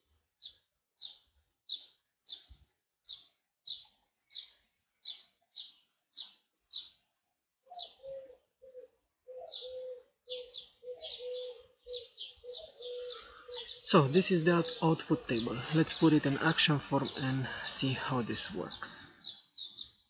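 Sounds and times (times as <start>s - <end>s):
birds chirping: 0.0s - 7.0s, 7.7s - 20.0s.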